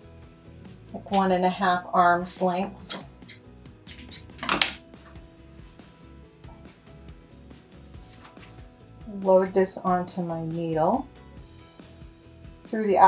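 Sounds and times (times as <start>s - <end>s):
soft background music: 0.0s - 13.0s
scissors snipping cord: 2.8s - 4.8s.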